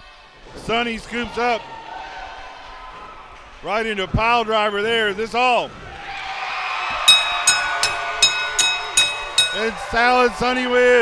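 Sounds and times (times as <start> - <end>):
crowd noise: 0.0 - 11.0
ring bell clanging rapidly: 7.1 - 10.4.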